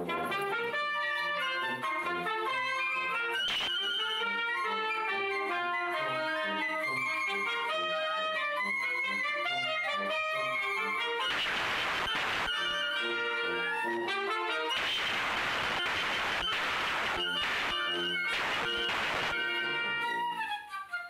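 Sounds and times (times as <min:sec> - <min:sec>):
wind band playing a march: 0:00.0 - 0:21.0
hissing noise: 0:11.2 - 0:13.6, 0:14.7 - 0:19.8.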